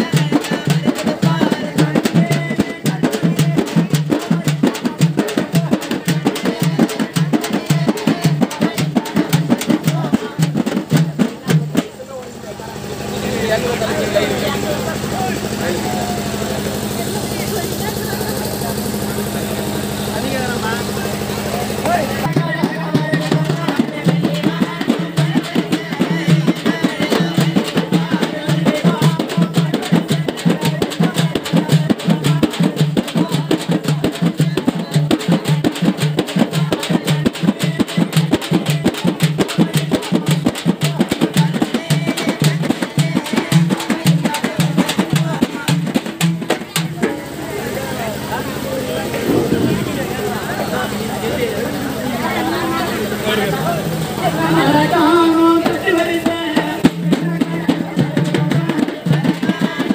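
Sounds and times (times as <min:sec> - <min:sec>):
stick drums beaten: 0:00.0 - 0:12.4, 0:20.9 - 0:47.4, 0:49.1 - 0:51.3, 0:54.6 - 0:59.9
drum roll: 0:00.0 - 0:59.9
voices: 0:00.0 - 0:59.9.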